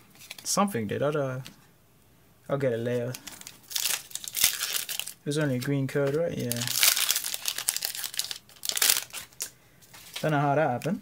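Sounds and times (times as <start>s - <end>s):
foil wrapper crinkling: 3.0s - 10.9s.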